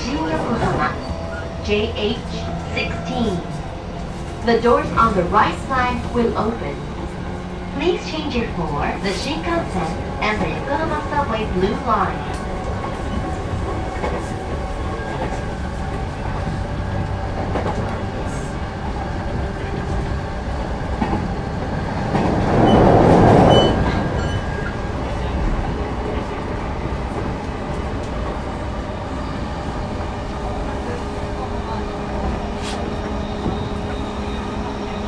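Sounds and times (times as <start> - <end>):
train wheels rumbling on rail: 0.0 - 35.0.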